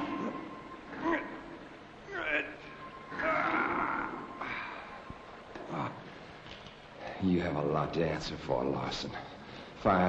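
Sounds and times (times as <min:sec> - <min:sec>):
person crying out in strain: 0:00.0 - 0:05.0.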